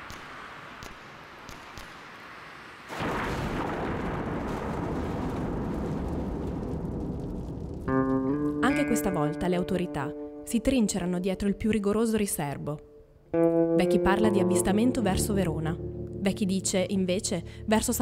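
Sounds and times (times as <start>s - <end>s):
faint hiss with crackles: 0.0s - 11.2s
plucked guitar music: 7.9s - 18.0s
deep rumbling noise: 14.9s - 18.0s.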